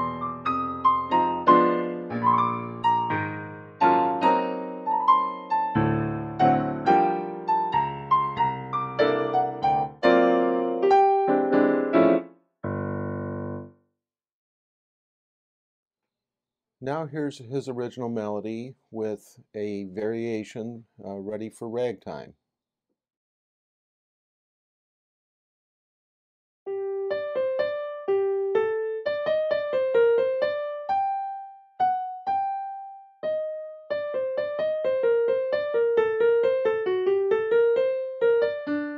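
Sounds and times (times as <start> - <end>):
digital piano chords: 0.0 - 13.7, 26.7 - 38.9.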